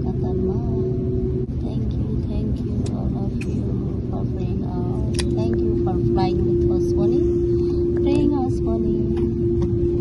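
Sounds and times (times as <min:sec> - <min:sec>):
faint passenger voices: 0:00.0 - 0:09.5
airliner cabin rumble: 0:00.0 - 0:10.0
steady hum: 0:00.0 - 0:10.0.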